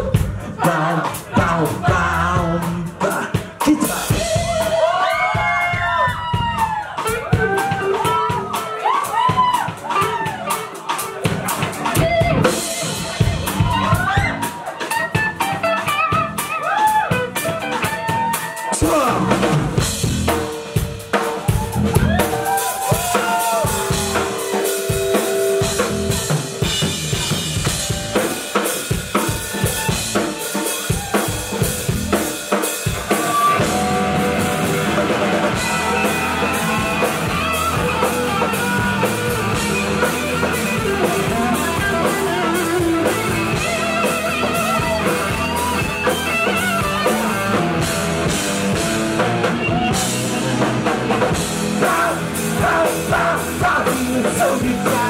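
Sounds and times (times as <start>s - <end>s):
electric guitar: 0.0s - 55.0s
punk band playing live: 0.0s - 55.0s.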